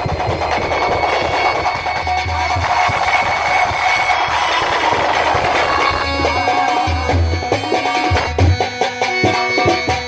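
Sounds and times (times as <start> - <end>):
noisy live stage wash: 0.0 - 8.3.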